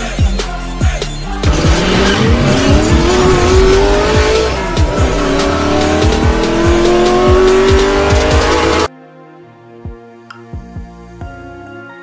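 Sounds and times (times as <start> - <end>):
race car engine sound effect: 1.2 - 8.9.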